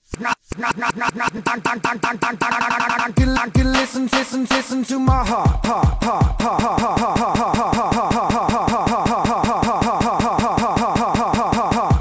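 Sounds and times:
looped hip hop beat stutter: 0.0s - 12.0s.

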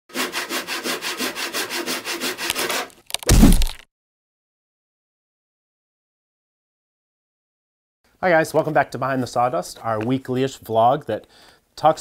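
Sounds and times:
hand saw cutting wood: 0.1s - 3.8s
wood cracking: 3.0s - 3.8s
loud deep thud: 3.3s - 3.8s.

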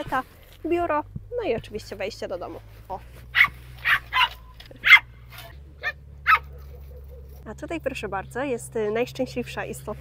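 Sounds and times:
small dog barking: 3.3s - 7.4s.

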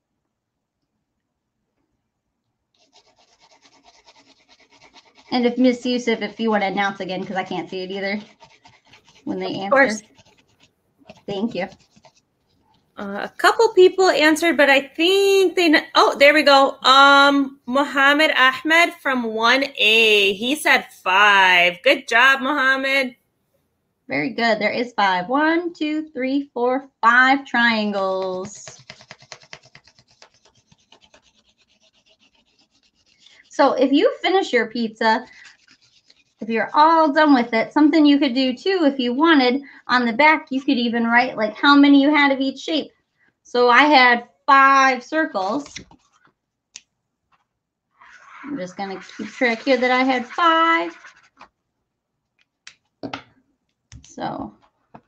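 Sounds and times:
marker scribbling on paper: 2.8s - 12.8s, 27.9s - 33.7s, 35.2s - 37.1s, 48.0s - 51.5s.

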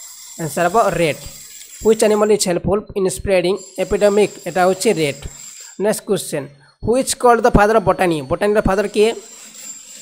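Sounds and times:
man speaking: 1.8s - 9.2s.

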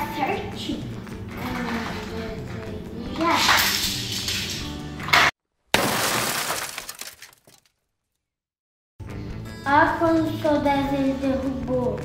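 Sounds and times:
background music: 0.0s - 5.2s, 9.0s - 12.0s
loud crashing and shattering: 3.6s - 7.7s.

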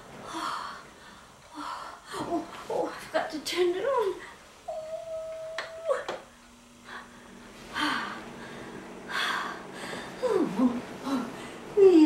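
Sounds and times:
heater fan humming: 0.0s - 12.0s.

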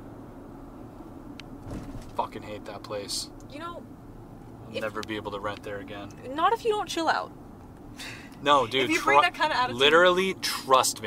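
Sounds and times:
car cabin rumble: 1.1s - 2.8s.

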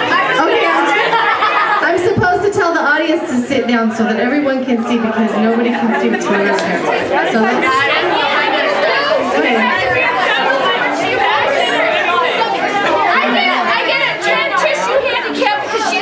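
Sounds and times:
crowd chattering: 0.0s - 16.0s.

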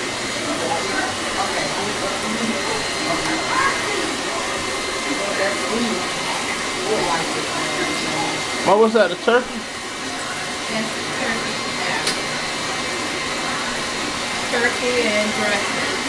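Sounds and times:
faint indistinct voices: 0.0s - 8.8s, 9.4s - 16.0s.

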